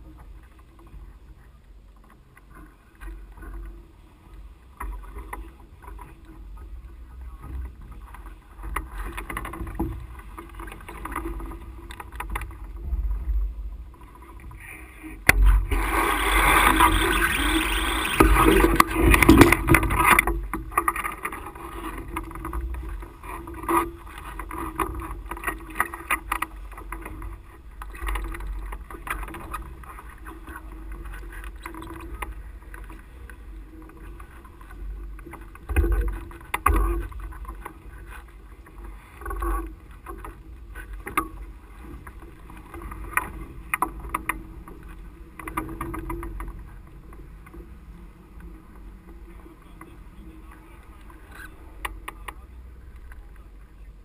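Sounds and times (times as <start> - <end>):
low steady rumble: 0.0 - 54.0.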